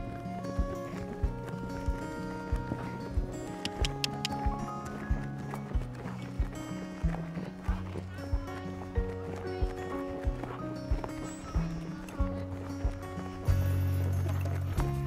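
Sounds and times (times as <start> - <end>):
steady thumping beat: 0.0 - 13.9
held synth notes: 0.0 - 15.0.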